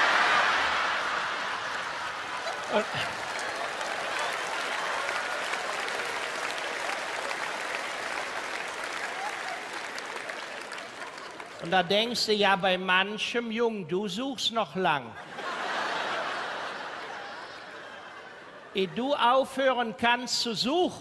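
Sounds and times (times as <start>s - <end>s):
theatre audience applauding: 0.0s - 12.2s.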